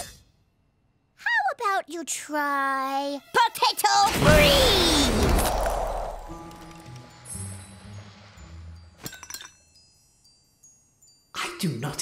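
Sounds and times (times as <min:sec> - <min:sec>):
sparkling ice chimes and clinks: 0:08.8 - 0:12.0.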